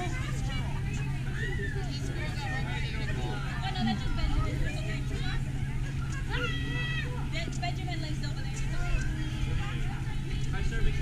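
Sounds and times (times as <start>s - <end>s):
people talking in background: 0.0s - 11.0s
low hum: 3.7s - 5.3s.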